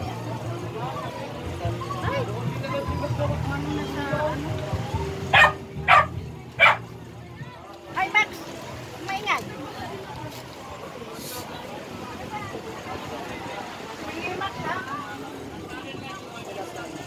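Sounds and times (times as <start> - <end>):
background chatter: 0.0 - 17.0
dog barking: 5.3 - 6.9.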